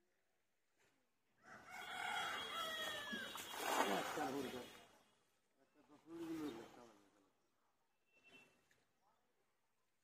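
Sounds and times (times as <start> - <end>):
rooster crowing: 1.4 - 3.3.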